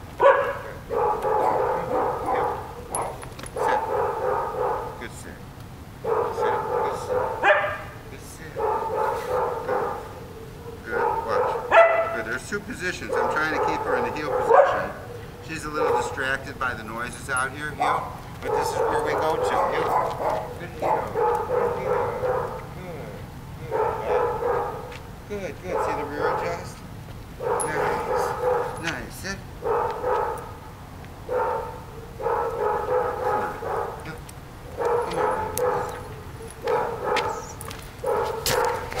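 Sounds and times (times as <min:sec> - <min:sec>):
dog barking: 0:00.2 - 0:05.0, 0:06.0 - 0:16.4, 0:17.3 - 0:22.7, 0:23.7 - 0:25.0, 0:25.6 - 0:26.7, 0:27.4 - 0:29.0, 0:29.6 - 0:30.6, 0:31.2 - 0:39.0.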